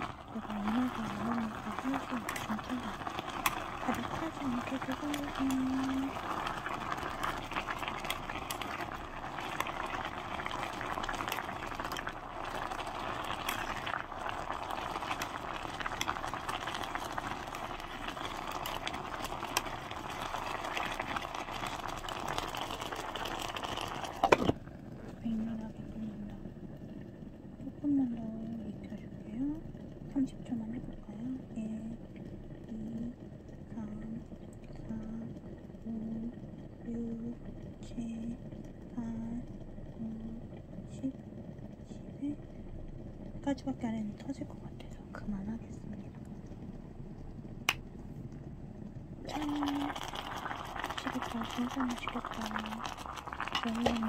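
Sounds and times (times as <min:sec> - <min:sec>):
food boiling in a pot: 0:00.0 - 0:54.0.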